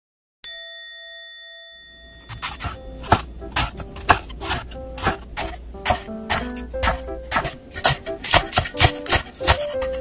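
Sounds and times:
bell-like chime: 0:00.4 - 0:03.0
background music with sharp beats: 0:02.6 - 0:10.0.

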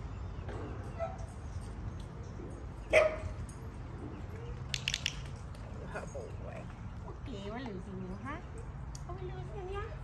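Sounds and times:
dog barking: 0:02.9 - 0:03.3.

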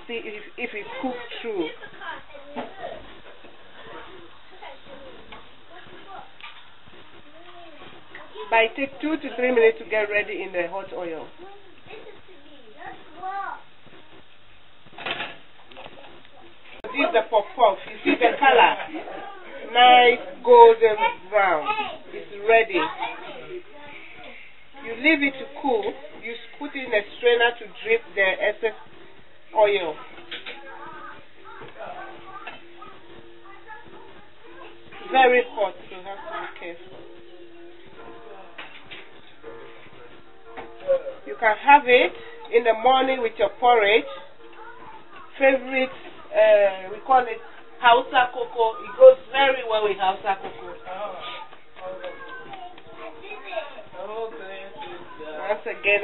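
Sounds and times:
soft background voices: 0:00.0 - 0:56.0.

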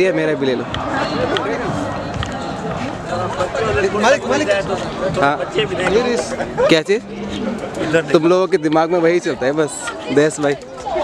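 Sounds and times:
people talking outdoors: 0:00.0 - 0:11.0
footsteps: 0:00.6 - 0:09.0.

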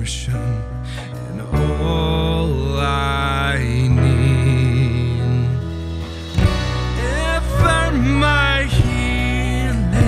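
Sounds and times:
electric bass line: 0:00.0 - 0:10.0.

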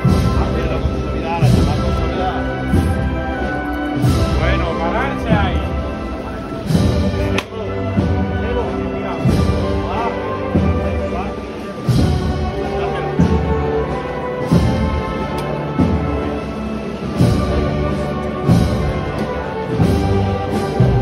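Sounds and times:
wind band playing a march: 0:00.0 - 0:21.0.

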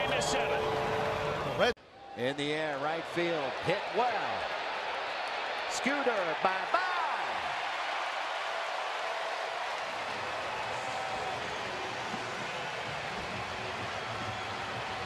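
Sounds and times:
crowd cheering and clapping: 0:00.0 - 0:02.1, 0:02.8 - 0:15.0.

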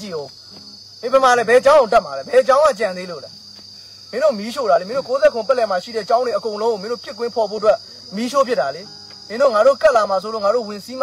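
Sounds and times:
man talking: 0:00.0 - 0:00.3, 0:01.0 - 0:03.3, 0:04.1 - 0:11.0
insect drone: 0:00.0 - 0:11.0.

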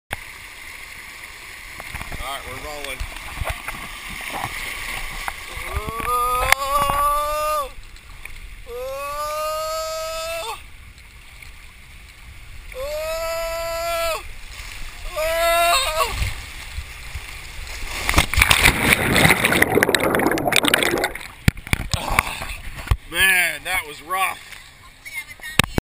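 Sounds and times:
pool water rushing and splashing: 0:00.1 - 0:25.8
water running down a slide: 0:01.8 - 0:07.8, 0:17.8 - 0:22.3.

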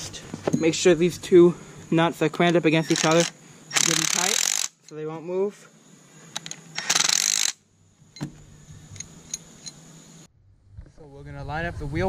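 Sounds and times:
cordless power driver spinning: 0:02.8 - 0:04.8, 0:06.4 - 0:07.6.

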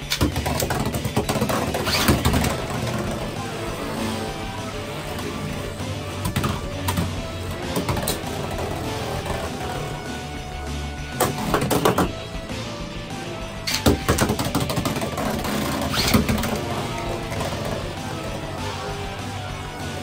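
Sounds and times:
background music: 0:00.0 - 0:20.0.

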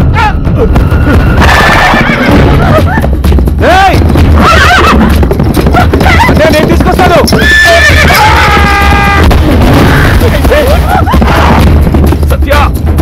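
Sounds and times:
film background music: 0:00.0 - 0:13.0
horse whinnying: 0:00.6 - 0:02.7, 0:04.4 - 0:05.2, 0:07.2 - 0:10.2.

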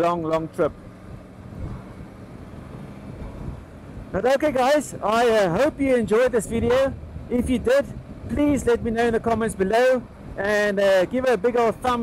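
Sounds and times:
road noise: 0:00.0 - 0:12.0
wind rush: 0:01.0 - 0:12.0.

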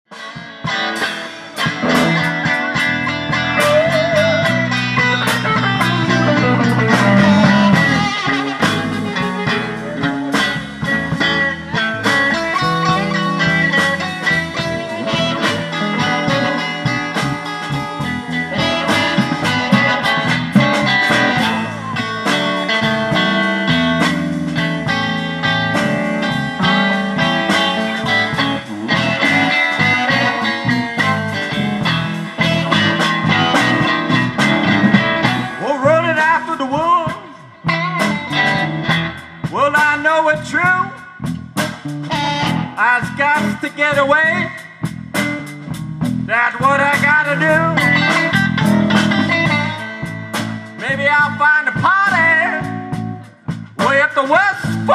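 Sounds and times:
live blues band playing: 0:00.1 - 0:54.9.

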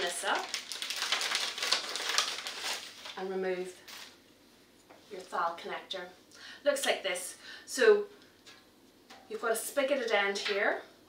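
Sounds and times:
medical packaging torn open: 0:00.4 - 0:03.2.

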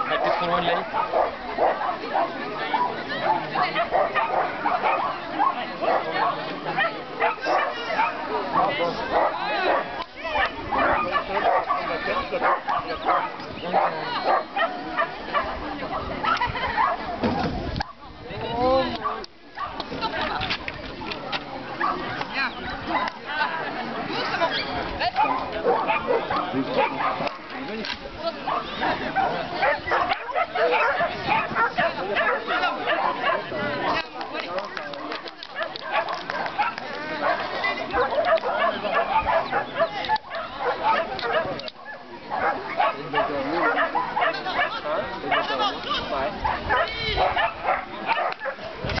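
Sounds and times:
people's voices: 0:00.0 - 0:49.0
dog barking: 0:00.1 - 0:17.0, 0:19.0 - 0:19.8, 0:21.8 - 0:22.1, 0:25.2 - 0:27.4, 0:28.5 - 0:33.5, 0:35.6 - 0:45.6, 0:46.4 - 0:48.6.

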